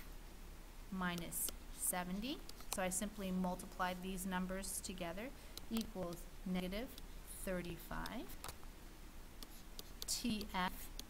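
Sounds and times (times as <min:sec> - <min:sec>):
stylus tapping and scratching: 0:01.1 - 0:04.0, 0:04.6 - 0:08.7, 0:09.4 - 0:11.0.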